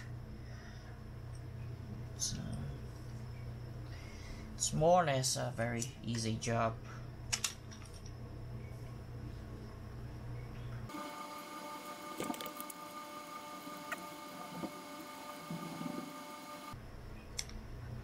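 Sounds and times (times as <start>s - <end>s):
steady background hum: 0.0s - 18.0s.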